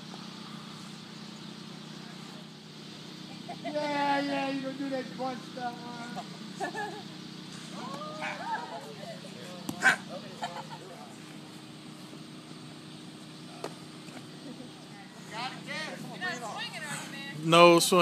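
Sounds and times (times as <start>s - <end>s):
steady low hum: 0.0s - 18.0s
distant voices talking: 0.1s - 18.0s.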